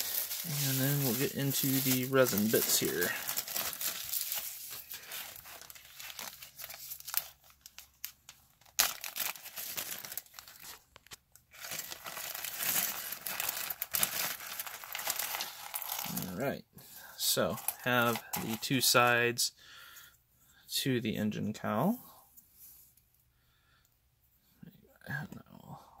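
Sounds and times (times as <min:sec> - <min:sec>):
plastic bag and bubble wrap crinkling: 0:00.0 - 0:16.5, 0:17.2 - 0:19.1.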